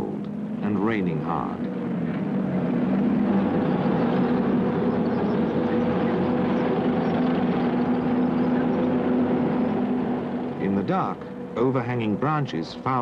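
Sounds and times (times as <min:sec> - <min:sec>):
tank engines droning: 0:00.0 - 0:13.0.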